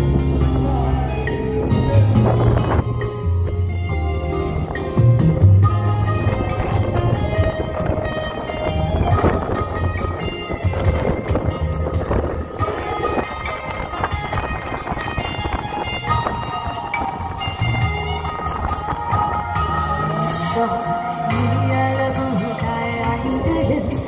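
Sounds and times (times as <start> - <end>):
instrumental pop ballad backing track: 0.0 - 24.0
steady bass beat: 0.0 - 24.0.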